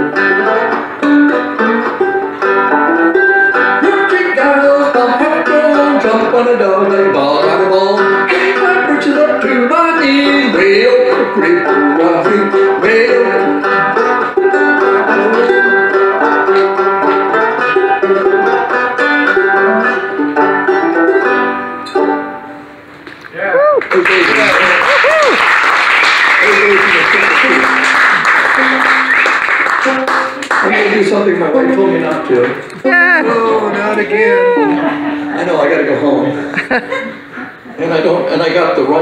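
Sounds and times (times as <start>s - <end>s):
banjo playing: 0.0s - 23.0s, 26.5s - 36.5s
crowd cheering: 23.3s - 31.1s
applause: 23.8s - 31.1s.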